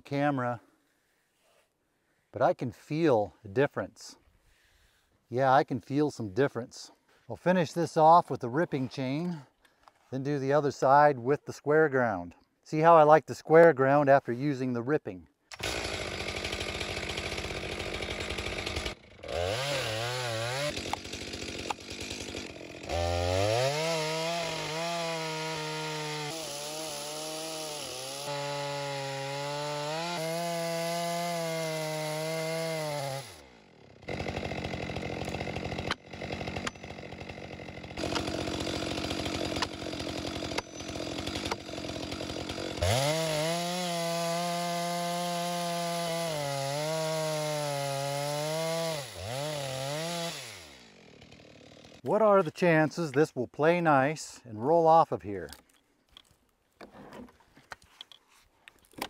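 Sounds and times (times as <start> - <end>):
chainsaw cutting log: 15.5 - 52.4.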